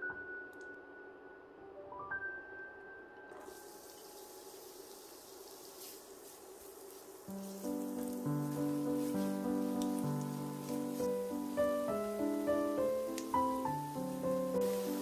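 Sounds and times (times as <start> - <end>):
background piano music: 0.0 - 6.0, 7.2 - 15.0
onion sizzling in a frying pan: 3.6 - 15.0
spatula stirring in a pan: 5.4 - 15.0.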